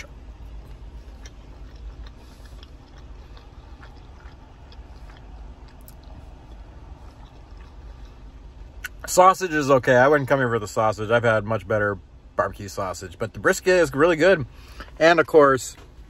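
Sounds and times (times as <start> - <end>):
man chewing: 0.0 - 9.1, 14.6 - 15.0
low car cabin hum: 0.0 - 16.0.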